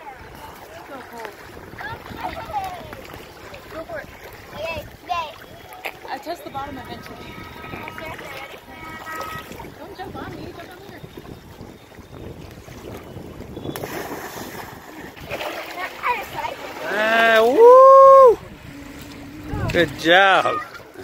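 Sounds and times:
river water: 0.0s - 21.0s
wind on microphone: 1.4s - 5.5s, 6.4s - 15.4s, 17.2s - 20.4s
high-pitched yell: 17.5s - 18.4s.

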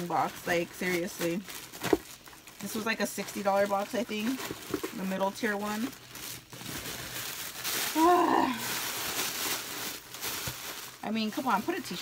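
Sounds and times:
packaging rustling and crinkling: 0.0s - 12.0s.

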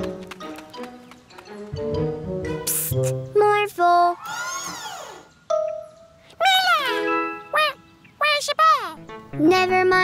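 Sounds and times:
cartoon music: 5.5s - 10.0s.

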